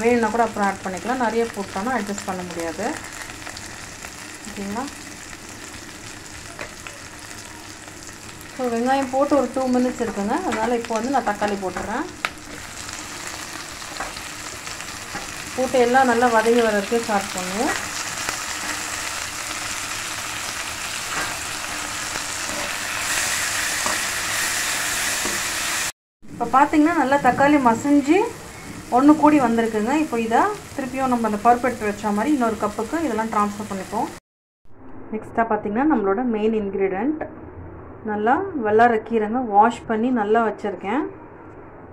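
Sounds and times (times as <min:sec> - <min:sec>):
woman talking: 0:00.0 - 0:03.0, 0:04.5 - 0:05.0, 0:08.6 - 0:12.2, 0:15.6 - 0:17.8, 0:26.4 - 0:28.3, 0:28.9 - 0:34.2, 0:35.1 - 0:37.3, 0:38.0 - 0:41.1
food sizzling in hot oil: 0:00.0 - 0:25.9, 0:26.7 - 0:34.2.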